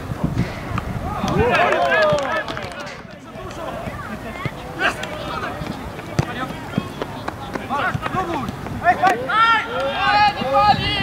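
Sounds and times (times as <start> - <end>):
players and spectators shouting: 1.0 - 11.0.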